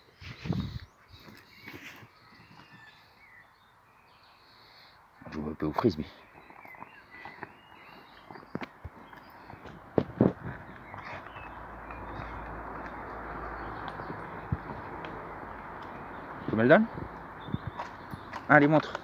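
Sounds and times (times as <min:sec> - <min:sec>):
claws and frisbee tapping on stone: 0:08.2 - 0:13.0, 0:17.7 - 0:19.0.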